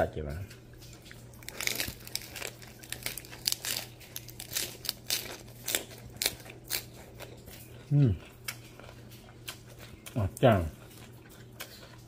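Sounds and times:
lettuce leaves crunching: 0.5s - 12.0s.

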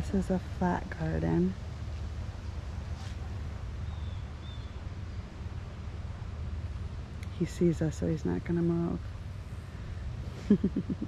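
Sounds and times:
soft hiss: 0.1s - 11.0s.

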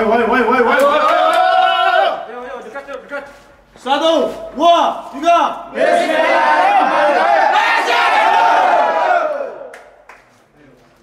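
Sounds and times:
players shouting together: 5.8s - 9.6s.

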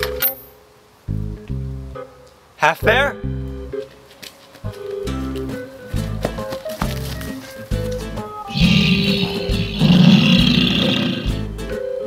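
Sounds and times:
background music: 1.1s - 12.0s
man roaring: 8.5s - 11.4s.

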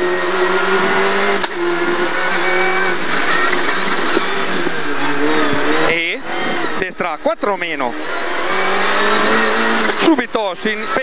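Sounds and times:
car engine at high revs: 0.0s - 11.0s.

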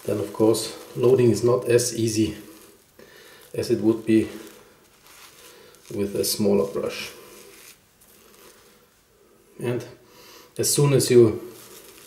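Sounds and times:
shaving brush rustling on soap: 0.0s - 8.9s, 10.8s - 12.0s
faint room hum: 0.0s - 12.0s.

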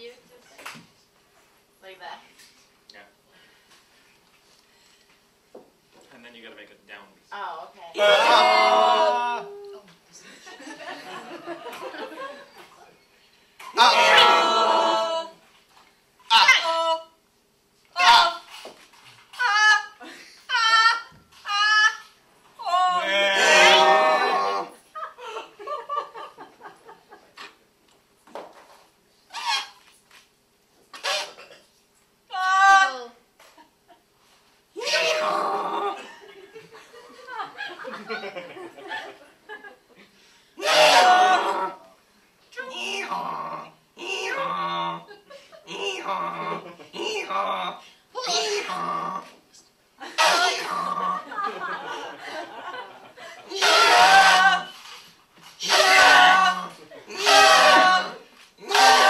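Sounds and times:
choir calling out together: 7.9s - 9.8s, 13.8s - 15.4s, 18.0s - 18.5s, 40.6s - 41.8s, 50.1s - 50.8s, 53.5s - 54.8s, 55.6s - 59.0s
rising vocal cry: 8.0s - 9.9s, 13.7s - 15.4s, 16.3s - 17.2s, 18.0s - 18.5s, 19.4s - 24.8s, 32.3s - 33.2s, 34.8s - 36.1s, 40.6s - 41.9s, 42.7s - 49.4s, 50.0s - 51.5s, 53.5s - 55.0s, 55.6s - 59.0s
choir making choppy vocal sounds: 50.2s - 51.3s, 55.6s - 59.0s.

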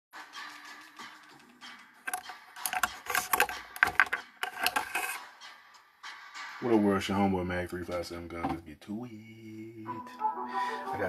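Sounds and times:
small hard objects clicking: 2.1s - 5.2s.

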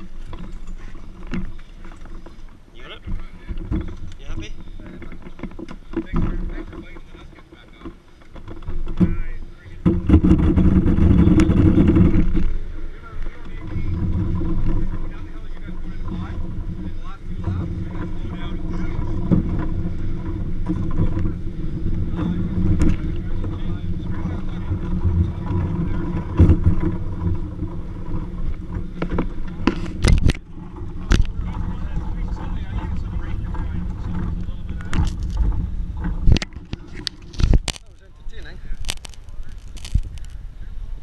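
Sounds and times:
kart rolling over pavement: 0.0s - 41.0s.

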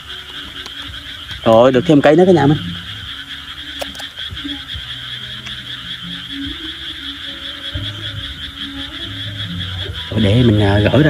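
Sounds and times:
frogs croaking: 0.0s - 11.0s
high-pitched frog trill: 0.0s - 11.0s.

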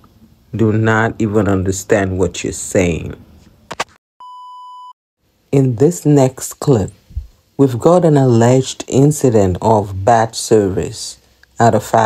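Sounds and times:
electronic bleep tone: 4.2s - 5.0s.

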